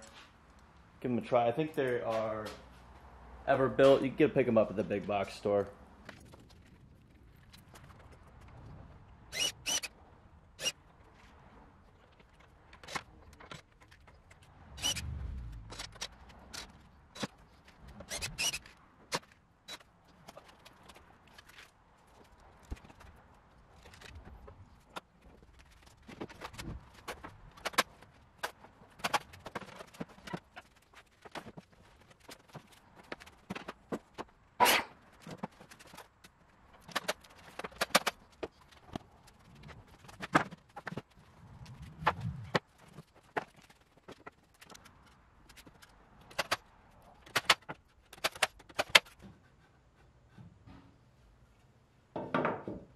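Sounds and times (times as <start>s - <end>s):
wooden boards and tools clattering: 23.8s - 41.2s, 42.1s - 46.6s, 47.2s - 49.5s, 52.1s - 52.9s.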